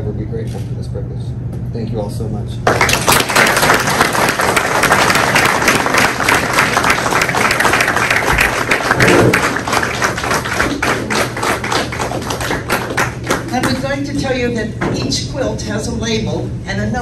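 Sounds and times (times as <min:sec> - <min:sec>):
audience applauding: 0:02.6 - 0:13.8.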